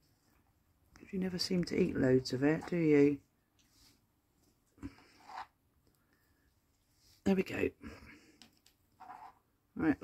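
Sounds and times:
faint scrape: 0:04.8 - 0:05.6.

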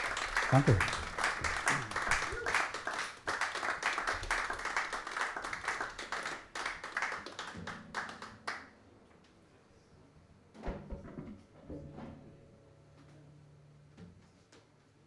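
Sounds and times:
audience applauding: 0:00.0 - 0:08.6.

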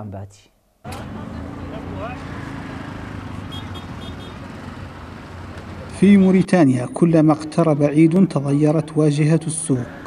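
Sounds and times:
traffic hum: 0:00.8 - 0:10.0.

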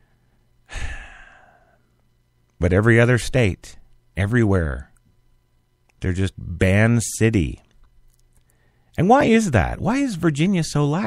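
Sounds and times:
faint low hum: 0:00.0 - 0:11.0
man sighing: 0:00.7 - 0:01.8.

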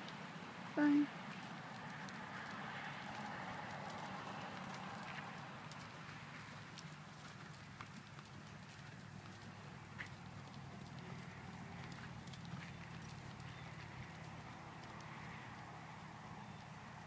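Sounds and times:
low background noise: 0:00.0 - 0:17.0
horse hoofbeats on sand: 0:01.2 - 0:17.0.

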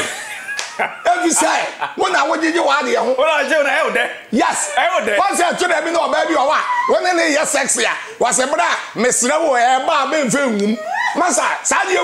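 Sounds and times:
hands slapping together: 0:00.5 - 0:00.8
man talking: 0:01.0 - 0:12.0
woman laughing: 0:06.2 - 0:07.2.

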